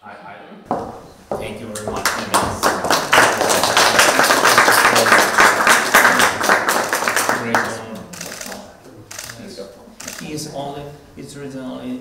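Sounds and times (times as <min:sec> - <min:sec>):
people clapping: 0:01.8 - 0:08.7.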